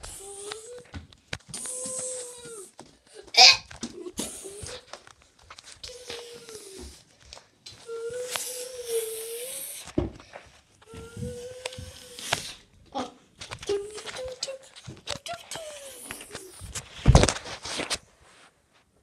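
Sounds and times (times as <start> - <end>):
child humming: 0.0 - 3.3, 4.0 - 4.9, 5.8 - 7.0, 7.8 - 9.9, 10.8 - 16.6.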